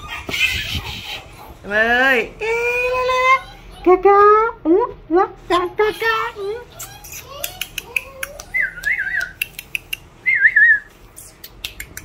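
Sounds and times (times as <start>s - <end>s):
tongue clicks: 6.8s - 10.2s, 11.1s - 12.0s.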